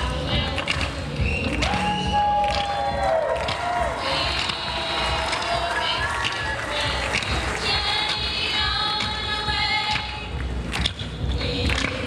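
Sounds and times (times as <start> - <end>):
voices singing live: 0.0 - 10.2
hand claps: 0.5 - 12.0.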